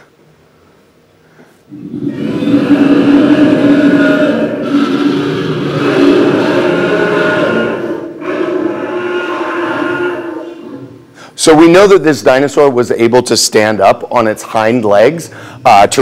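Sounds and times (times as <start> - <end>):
recorded dinosaur roar: 1.7 - 11.2.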